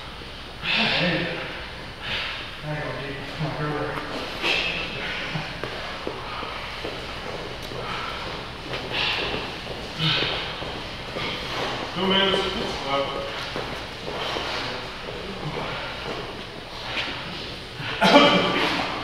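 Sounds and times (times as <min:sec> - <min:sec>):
bursts of breath: 0:00.6 - 0:02.6, 0:07.7 - 0:11.9.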